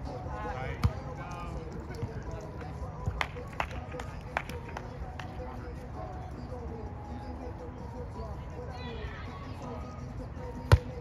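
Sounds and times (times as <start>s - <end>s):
volleyball hit by hand: 10.7s - 11.0s.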